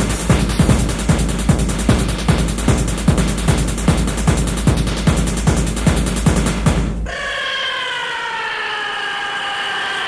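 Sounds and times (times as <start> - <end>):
siren-like synthesizer tone sliding down: 7.1 - 10.0.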